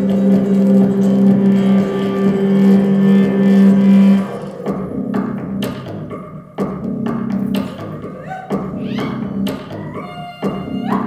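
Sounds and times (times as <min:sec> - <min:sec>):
sustained low drone note: 0:00.0 - 0:04.6
belly dance music: 0:00.0 - 0:11.0.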